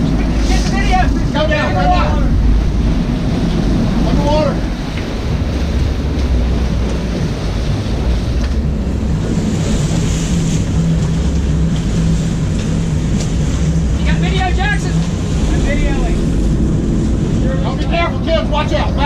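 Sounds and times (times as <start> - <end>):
boat engines rumbling: 0.0 - 19.0
water churning: 0.0 - 19.0
wind buffeting microphone: 0.0 - 19.0.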